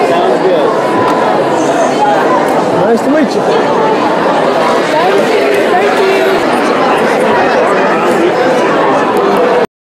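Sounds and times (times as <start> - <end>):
crowd of people talking: 0.0 - 9.7.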